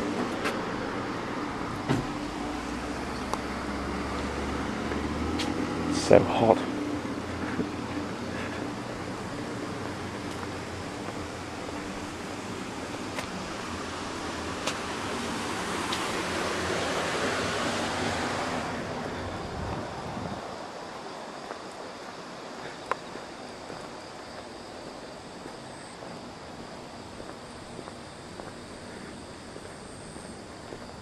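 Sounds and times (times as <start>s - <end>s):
rush of street noise: 0.0s - 31.0s
steady low hum: 0.0s - 31.0s.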